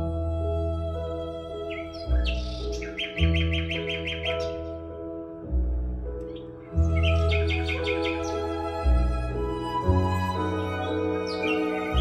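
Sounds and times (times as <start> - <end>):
deep bass notes: 0.0 - 12.0
sustained string-like tones: 6.6 - 12.0.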